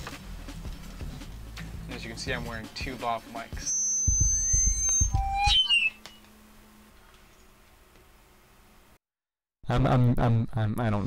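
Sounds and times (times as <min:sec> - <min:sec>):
squeaky whistling tones: 0:03.6 - 0:06.2.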